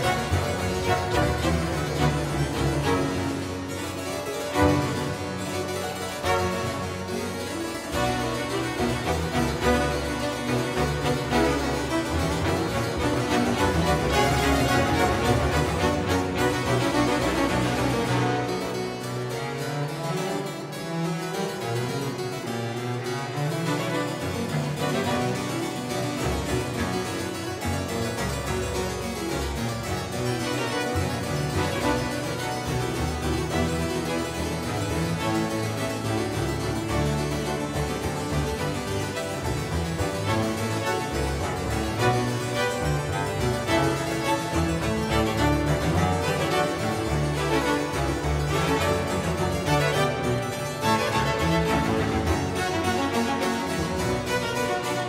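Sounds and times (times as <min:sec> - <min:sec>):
harpsichords playing: 0:00.0 - 0:55.0
string ensemble: 0:00.0 - 0:55.0.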